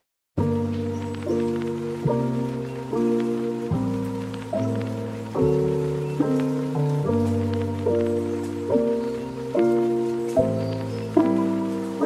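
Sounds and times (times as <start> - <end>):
soft sustained chords: 0.4 - 12.0.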